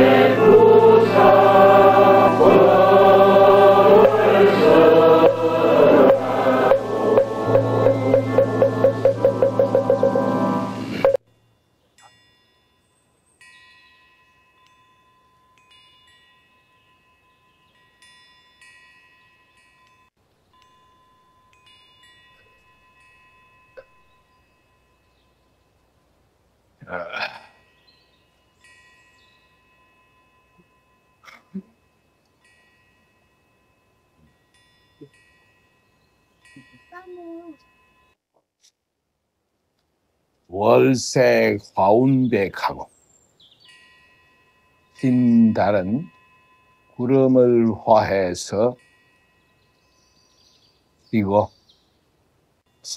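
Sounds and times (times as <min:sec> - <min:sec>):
chanted music with knocking beat: 0:00.0 - 0:11.2
wind chimes ringing: 0:00.0 - 0:26.2, 0:27.0 - 0:38.2, 0:41.2 - 0:52.9.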